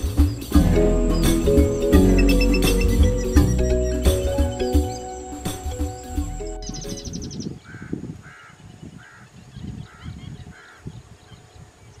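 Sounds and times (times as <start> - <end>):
background music: 0.0 - 7.4
bird calls: 0.0 - 7.8
rapid high trill: 0.5 - 7.2.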